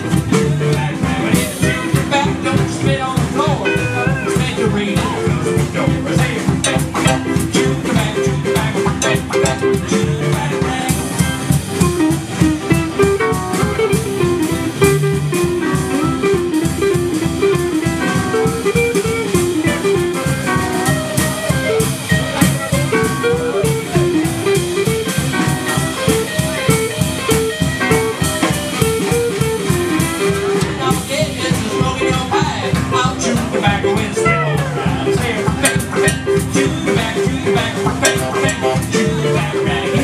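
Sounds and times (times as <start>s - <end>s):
drum kit beat: 0.0s - 40.0s
electric guitar picking melody: 0.0s - 40.0s
rhythm guitar: 0.0s - 40.0s
upright bass: 0.0s - 40.0s.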